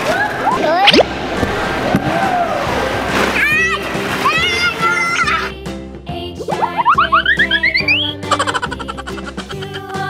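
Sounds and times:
background music: 0:01.0 - 0:10.0
child squealing: 0:06.6 - 0:10.0.

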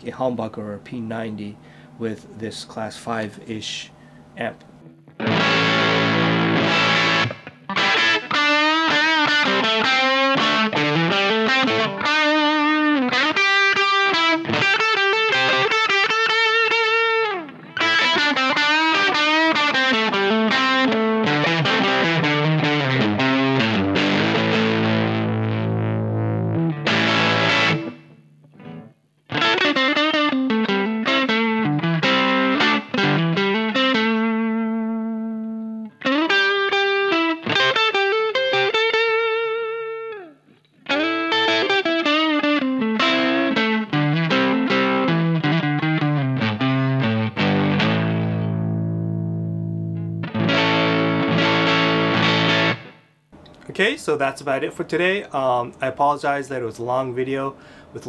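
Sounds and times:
overdriven electric guitar: 0:04.6 - 0:53.6.

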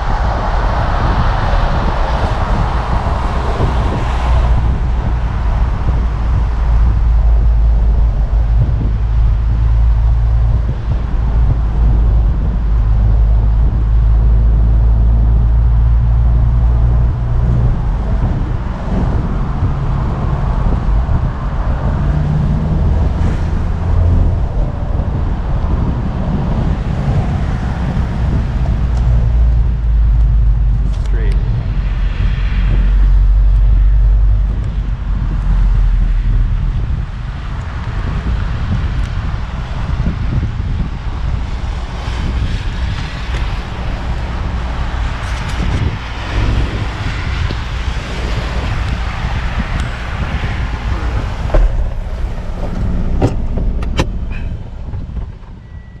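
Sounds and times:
heavy low rumble: 0:00.0 - 0:56.0
road and tyre noise: 0:00.0 - 0:56.0
wind buffeting microphone: 0:00.0 - 0:56.0.

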